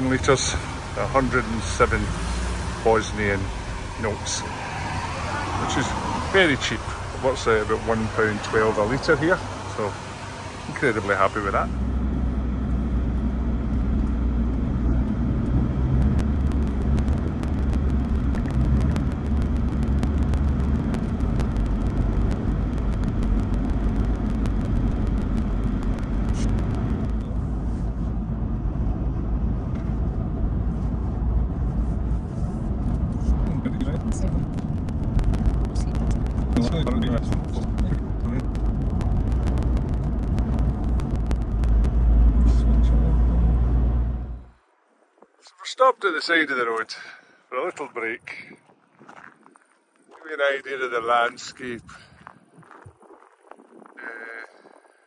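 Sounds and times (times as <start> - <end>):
engine and tyre rumble: 0.0 - 45.3.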